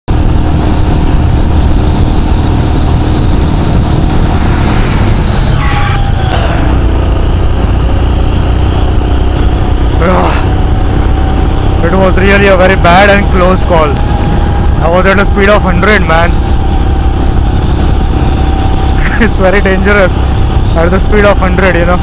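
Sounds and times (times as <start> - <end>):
motorcycle engine at speed: 0.0 - 22.0
heavy wind rush: 0.1 - 22.0.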